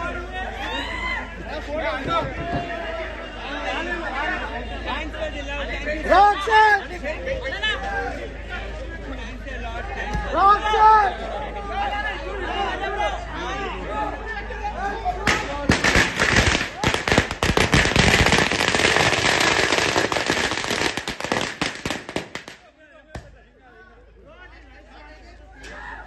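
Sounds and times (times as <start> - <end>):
crowd voices: 0.0 - 26.0
firecrackers cracking: 15.2 - 23.3.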